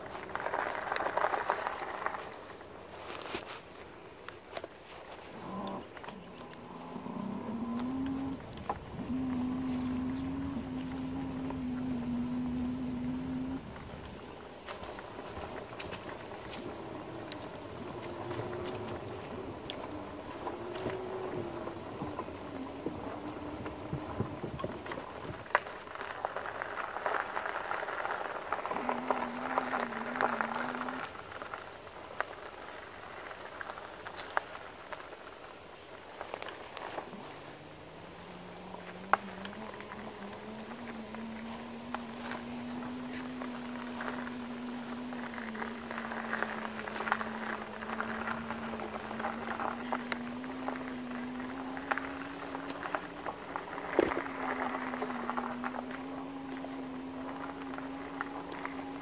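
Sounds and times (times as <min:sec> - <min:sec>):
bike rattles and clicks: 0:00.0 - 0:59.0
tyres crunching on dirt: 0:00.0 - 0:59.0.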